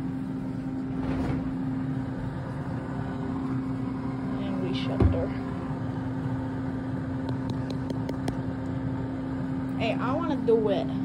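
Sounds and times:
air fryer fan humming: 0.0s - 11.0s
oven door shutting with a thump: 4.9s - 5.4s.

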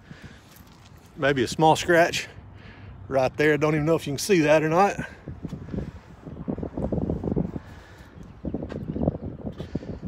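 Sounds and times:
wind buffeting microphone: 3.4s - 10.0s.

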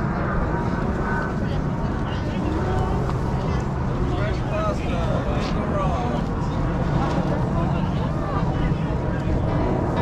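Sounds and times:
people talking: 0.0s - 10.0s
steady low hum: 0.0s - 10.0s.

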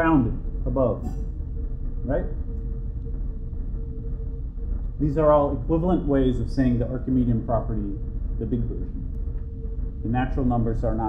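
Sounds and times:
faint hum: 0.0s - 11.0s
low background rumble: 0.0s - 11.0s.

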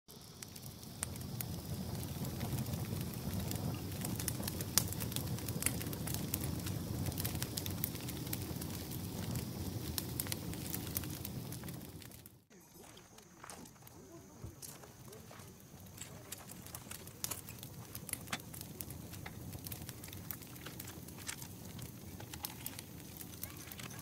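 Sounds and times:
burning logs crackling and popping: 0.1s - 24.0s
campfire flames rushing: 0.1s - 24.0s.

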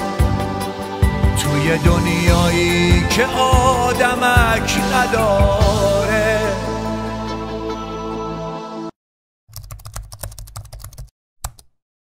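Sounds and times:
computer keyboard typing: 9.5s - 11.8s.

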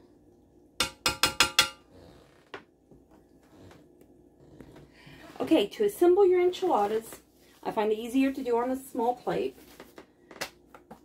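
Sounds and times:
utensil tapping a dish: 0.8s - 1.8s.

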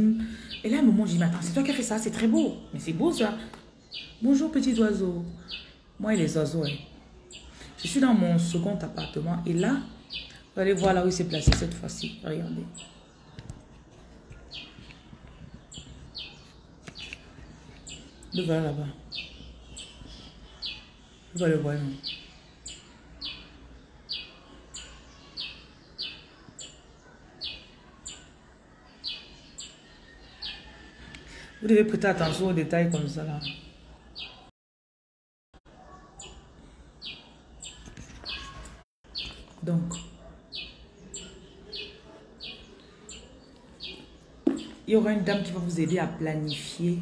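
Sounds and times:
bird chirping: 0.0s - 34.5s, 35.8s - 47.0s.

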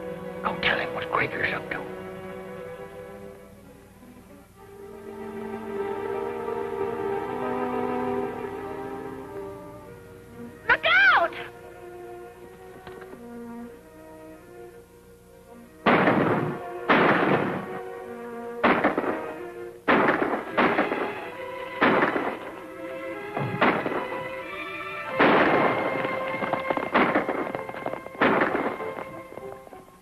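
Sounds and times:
orchestral film score: 0.0s - 30.0s
echoing gunshots: 15.8s - 17.9s, 18.6s - 29.7s.

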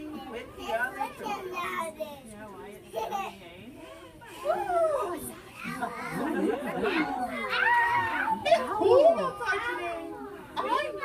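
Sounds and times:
voices talking with children: 0.0s - 11.0s.

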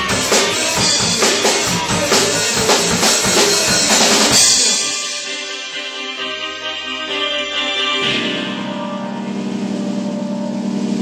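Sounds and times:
cymbals washing: 0.0s - 11.0s
rock band sustaining chord: 0.0s - 11.0s.

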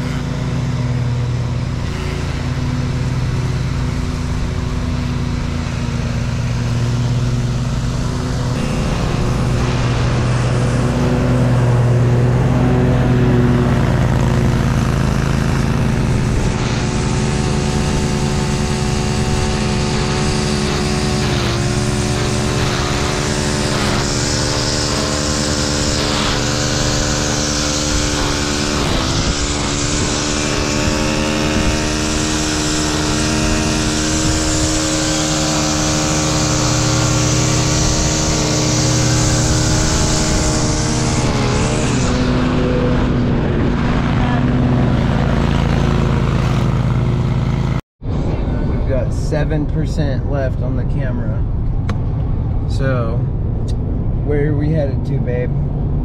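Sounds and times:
riding mower engine running: 0.0s - 56.0s.

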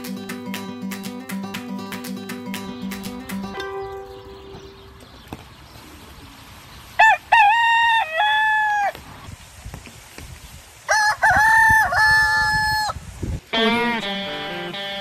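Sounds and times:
guitar music: 0.0s - 5.0s, 13.5s - 15.0s
rooster crowing: 7.0s - 9.0s, 10.9s - 13.0s.

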